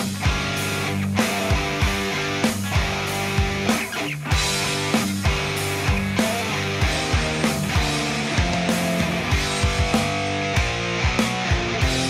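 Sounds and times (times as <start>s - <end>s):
rock music with electric guitar: 0.0s - 12.0s
steady drum beat: 0.0s - 12.0s.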